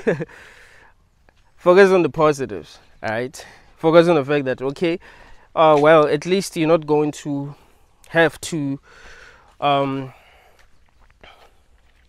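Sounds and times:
faint outdoor background: 0.0 - 12.0
man saying um: 9.6 - 10.3.

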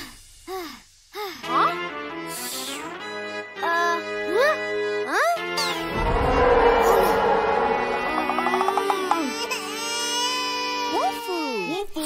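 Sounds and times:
background music: 1.5 - 11.2.

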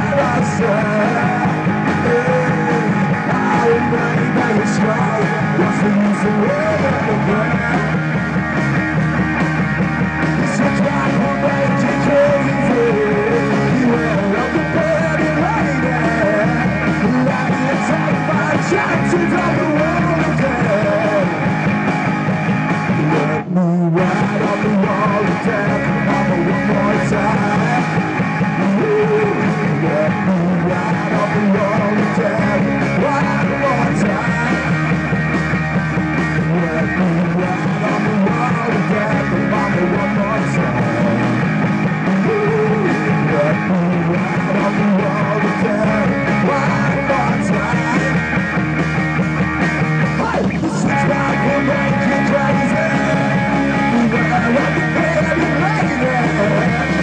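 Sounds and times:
drum kit: 0.0 - 57.0
electric guitars: 0.0 - 57.0.

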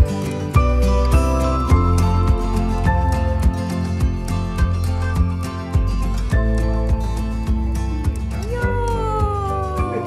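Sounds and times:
music with steady beat: 0.0 - 10.0.

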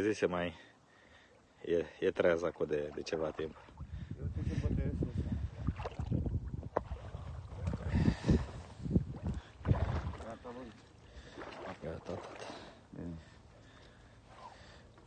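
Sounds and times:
water sloshing: 2.2 - 4.2, 5.0 - 15.0.

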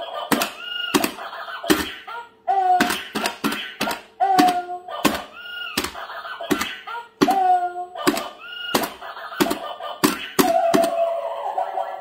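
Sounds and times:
plastic toy hammer hits: 0.3 - 2.0, 2.7 - 11.0.

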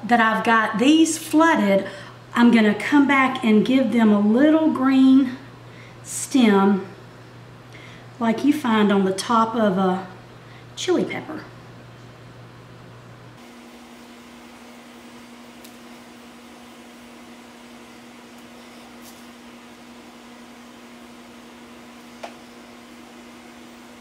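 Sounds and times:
low electrical hum: 0.0 - 24.0.

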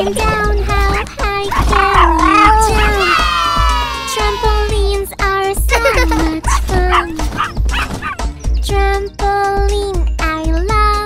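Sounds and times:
children's song music: 0.0 - 11.0
cartoon puppy yipping and barking: 1.4 - 4.8, 5.8 - 8.3.

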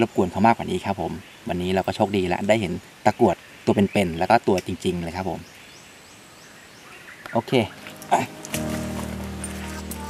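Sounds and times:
faint steady hiss: 0.0 - 10.0
man speaking: 7.4 - 8.4.

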